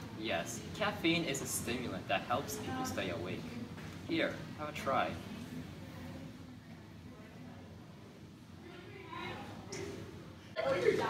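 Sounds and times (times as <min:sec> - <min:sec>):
room hum: 0:00.0 - 0:11.0.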